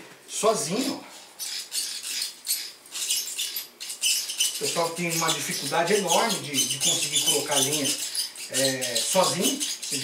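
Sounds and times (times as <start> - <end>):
fishing reel cranking whirs: 1.4 - 10.0.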